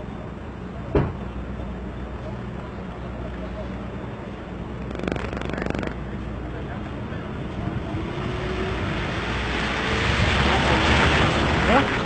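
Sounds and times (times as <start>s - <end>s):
vehicle engines idling: 0.0s - 8.9s
sharp thump: 0.9s - 1.2s.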